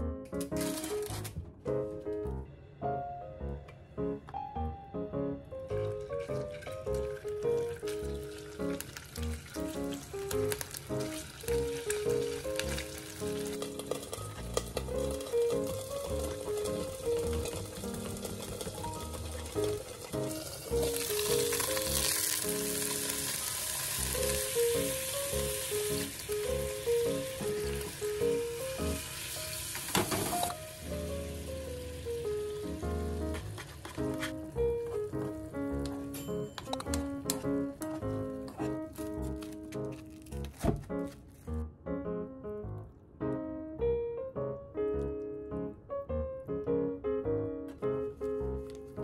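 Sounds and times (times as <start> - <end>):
light background music: 0.0 - 49.0
tofu sizzling in a frying pan: 7.8 - 35.8.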